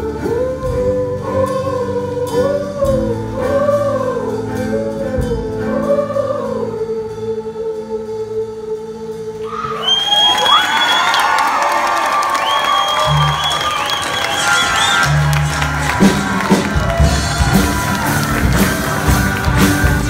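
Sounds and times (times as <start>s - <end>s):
choral chord: 0.0s - 9.6s, 13.0s - 20.0s
audience cheering and whooping: 9.4s - 20.0s
low notes: 12.7s - 20.0s
song with strummed rhythm: 15.0s - 20.0s.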